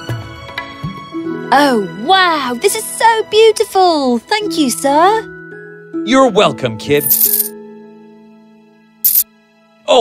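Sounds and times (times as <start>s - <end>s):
soft background music: 0.0s - 10.0s
coins clinking into a palm: 7.0s - 7.5s, 9.0s - 9.2s.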